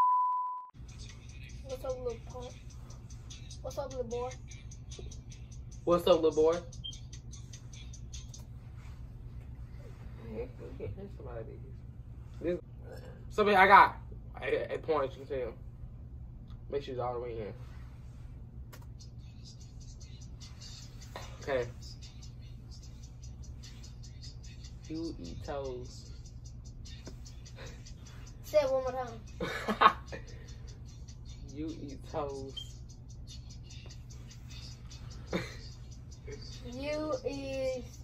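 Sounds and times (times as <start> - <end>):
tinny music from earbuds: 0.8 - 9.1, 18.9 - 38.0
steady low hum: 0.8 - 38.0
person whispering: 1.1 - 2.7.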